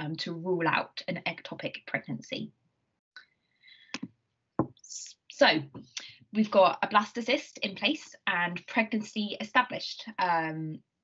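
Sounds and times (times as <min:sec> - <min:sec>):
knock: 0:04.0 - 0:04.8.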